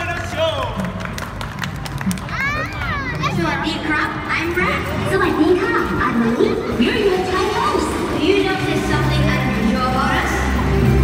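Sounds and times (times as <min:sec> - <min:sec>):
sharp claps: 0:00.0 - 0:03.0
crowd chattering: 0:00.0 - 0:11.0.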